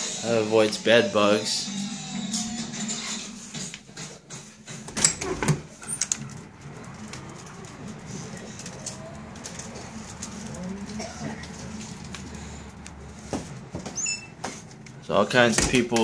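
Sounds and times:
outdoor background hum: 1.7s - 16.0s.

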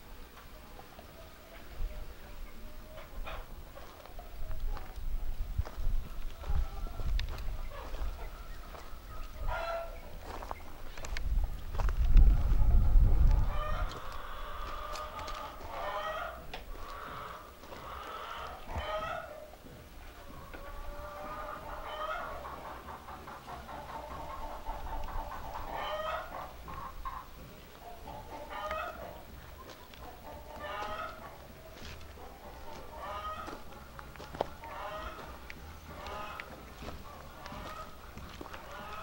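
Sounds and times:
chickens clucking: 0.0s - 39.0s
low rumble on microphone: 3.1s - 15.6s.

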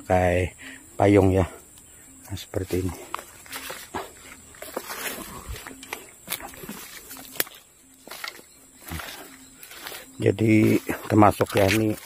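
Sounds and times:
sharp crackles and rustles: 2.6s - 12.0s.

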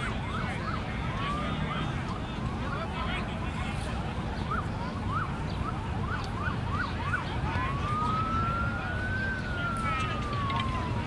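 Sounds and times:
emergency vehicle siren: 0.0s - 11.0s.

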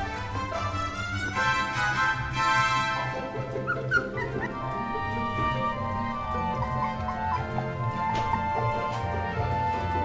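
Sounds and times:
background music: 0.0s - 10.0s
puppy whimpering squeaks: 3.6s - 4.9s.

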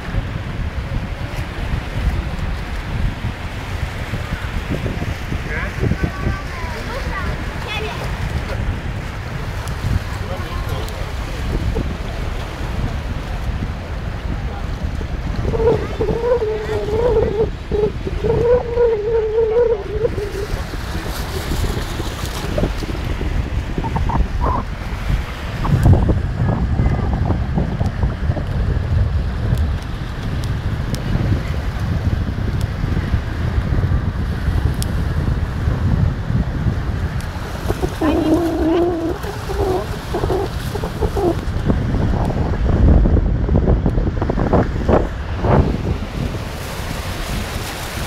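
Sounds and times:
small waves washing ashore: 0.0s - 48.0s
wind rumbling on microphone: 0.0s - 48.0s
person calling out: 15.5s - 20.5s, 38.0s - 40.4s.

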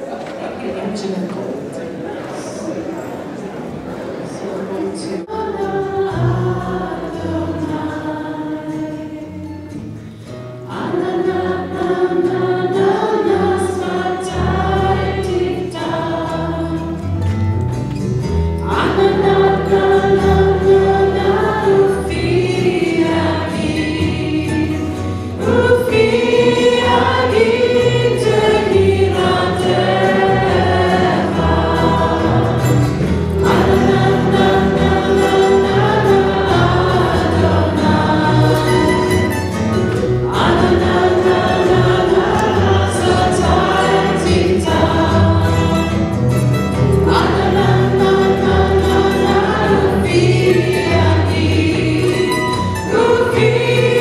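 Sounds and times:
choir singing: 3.2s - 10.0s, 10.6s - 17.4s, 18.4s - 54.0s
low instrumental accompaniment: 11.4s - 54.0s.

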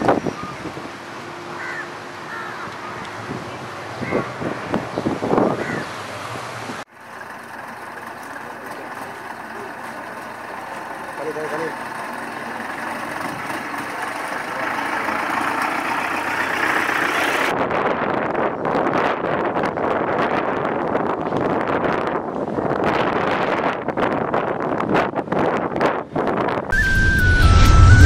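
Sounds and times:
outdoor street noise: 0.0s - 28.0s
vehicle engine running: 6.6s - 17.5s.

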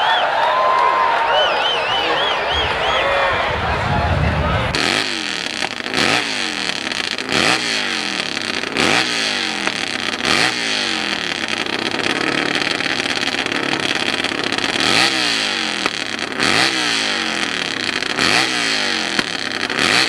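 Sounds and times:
motorcycle engine revving: 2.4s - 20.0s.

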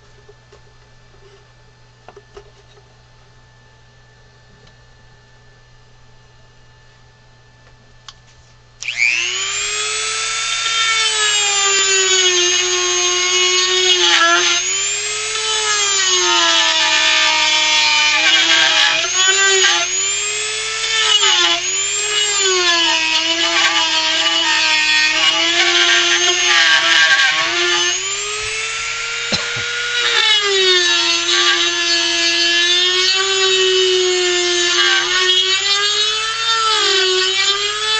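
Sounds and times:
rotary tool whining carving wood: 8.8s - 37.9s.

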